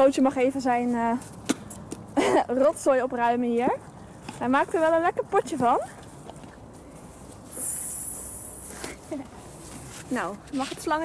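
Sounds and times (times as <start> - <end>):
high hiss: 7.5 - 8.7.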